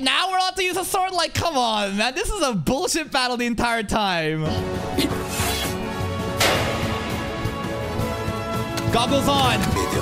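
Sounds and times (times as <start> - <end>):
anime soundtrack music: 4.4 - 10.0
battle hit sound effects: 6.4 - 7.7.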